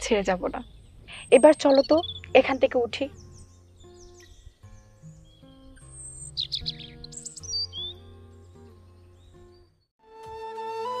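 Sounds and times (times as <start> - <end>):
small birds chirping: 0.0 - 9.9
soft background music: 0.0 - 11.0.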